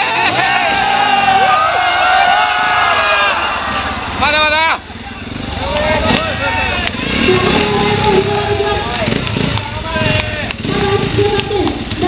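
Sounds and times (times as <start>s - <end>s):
motorcycle engine idling: 2.6s - 12.0s.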